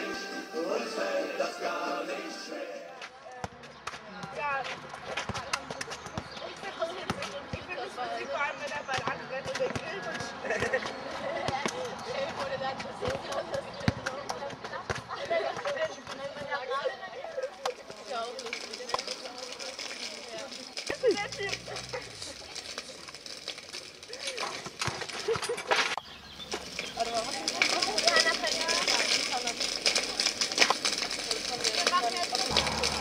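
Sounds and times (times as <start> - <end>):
chatter of young voices: 2.8 - 23.2, 26.8 - 33.0.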